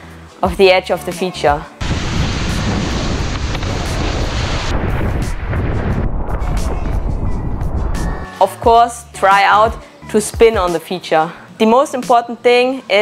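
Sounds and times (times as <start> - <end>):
background music: 0.0 - 13.0
wind on microphone: 1.9 - 8.2.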